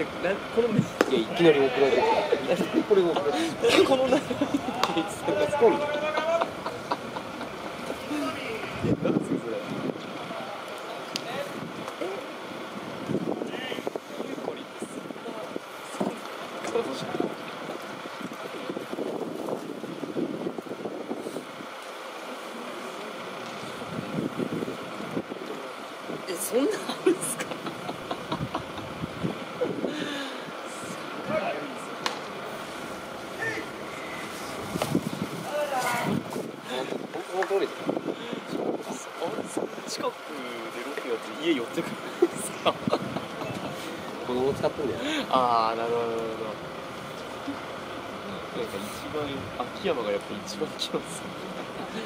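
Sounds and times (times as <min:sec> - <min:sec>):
people chatting: 0:00.0 - 0:12.3, 0:24.6 - 0:28.7, 0:35.5 - 0:46.6, 0:48.2 - 0:52.0
wind noise on microphone: 0:08.6 - 0:10.5, 0:11.5 - 0:11.9, 0:12.8 - 0:15.6, 0:17.0 - 0:21.7, 0:23.8 - 0:25.4, 0:27.9 - 0:31.0, 0:34.5 - 0:39.9, 0:42.4 - 0:43.8.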